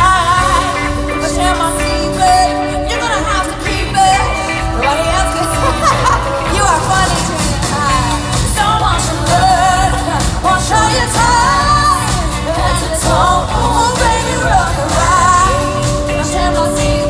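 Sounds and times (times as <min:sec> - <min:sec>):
live pop band playing: 0:00.0 - 0:17.0
woman singing into a microphone: 0:00.0 - 0:17.0.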